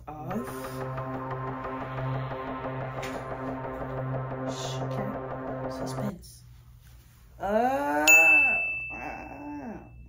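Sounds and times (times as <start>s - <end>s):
high bell-like ding: 8.1s - 10.0s.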